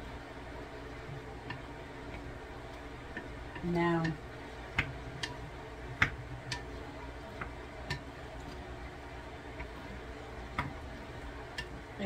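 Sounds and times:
low steady background: 0.0s - 12.0s.

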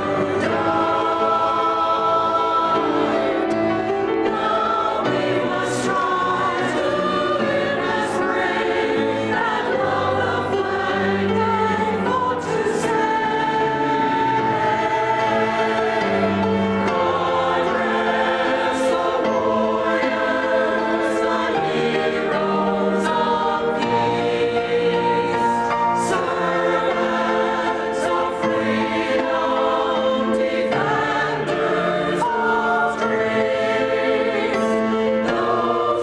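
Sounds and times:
grand piano accompaniment: 0.0s - 36.0s
mixed choir singing: 0.0s - 36.0s.

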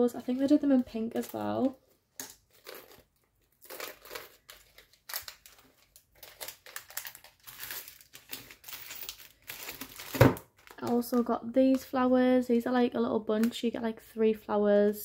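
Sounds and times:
packaging crinkling: 2.3s - 11.9s.

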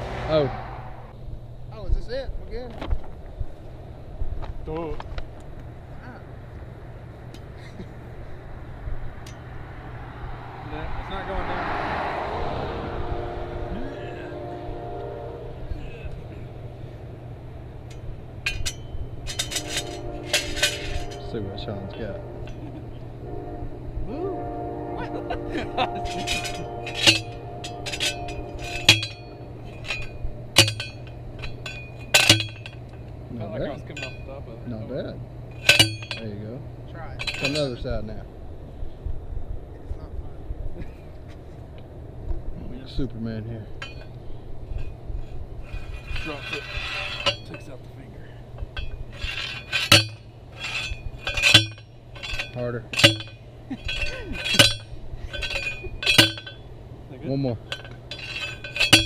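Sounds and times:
ringing metal clanks: 9.2s - 9.5s, 17.7s - 23.2s, 25.2s - 38.2s, 43.0s - 59.0s.

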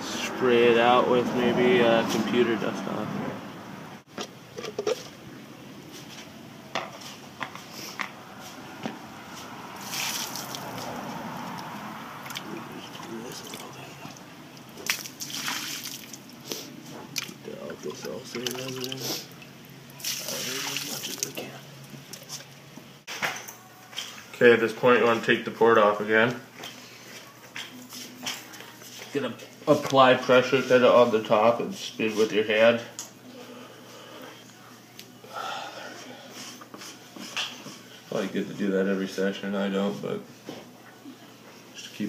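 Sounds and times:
water splashing: 9.8s - 13.8s, 14.6s - 16.4s, 18.2s - 21.4s.

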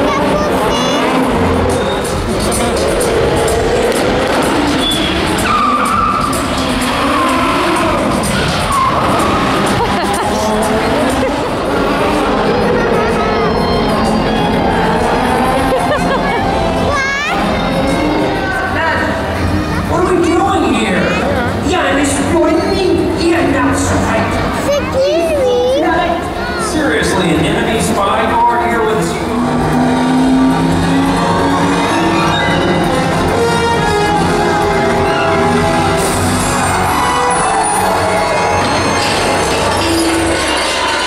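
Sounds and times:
child calling out: 0.0s - 1.2s, 16.9s - 17.4s, 24.6s - 26.7s
audience chatter: 0.0s - 41.0s
tyre squeals: 4.7s - 9.6s
car engines running: 27.0s - 37.0s.

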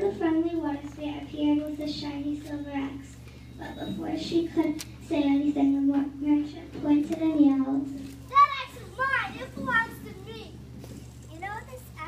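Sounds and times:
child speaking: 0.0s - 10.6s, 11.3s - 12.0s
child yelling: 8.3s - 10.5s.

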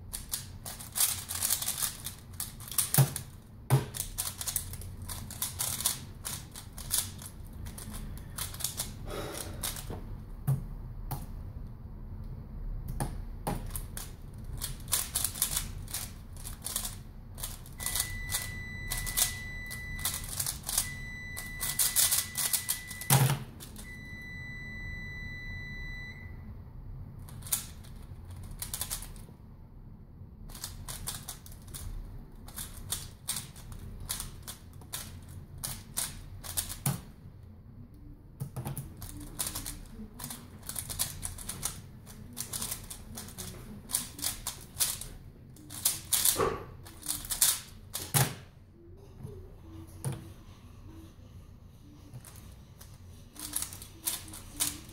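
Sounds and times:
plastic puzzle cube clicking: 0.1s - 8.9s, 13.6s - 19.4s, 27.3s - 29.2s, 32.5s - 37.0s, 38.6s - 48.2s
high beep: 17.8s - 26.4s.

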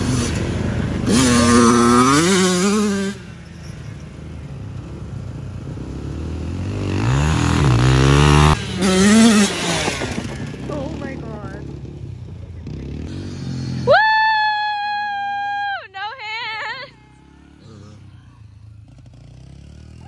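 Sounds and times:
dirt bike engine revving: 0.0s - 14.1s, 14.8s - 20.0s.

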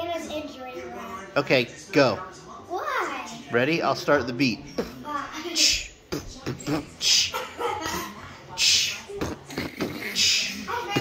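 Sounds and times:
person beatboxing: 8.6s - 11.0s.

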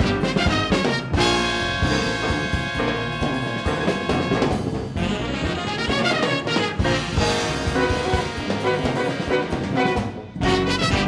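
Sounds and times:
big band playing: 0.0s - 11.0s
brass section: 0.0s - 11.0s
drums: 0.0s - 11.0s.

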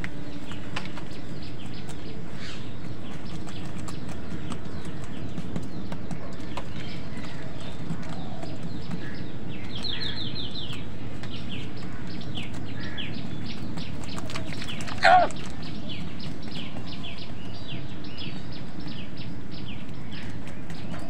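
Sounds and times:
birds chirping: 0.0s - 21.0s
steady low rumble: 0.0s - 21.0s.

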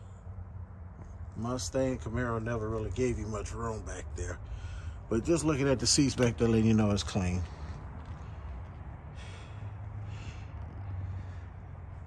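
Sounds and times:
person breathing: 4.4s - 5.1s, 7.4s - 12.0s.

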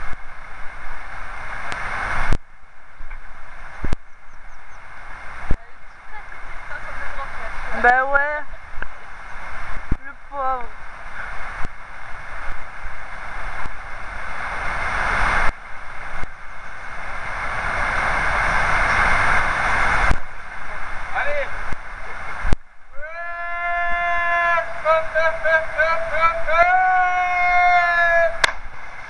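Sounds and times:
river water rushing: 0.0s - 29.0s
long high held call: 22.9s - 28.6s.

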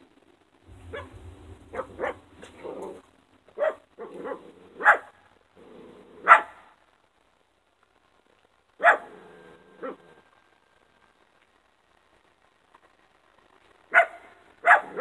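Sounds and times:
dog barking: 0.8s - 3.0s, 3.6s - 5.2s, 6.2s - 6.8s, 8.8s - 10.2s, 13.9s - 15.0s.

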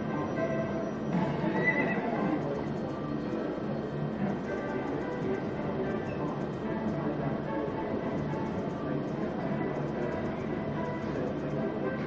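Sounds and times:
horse neighing sound effect: 1.4s - 2.1s.

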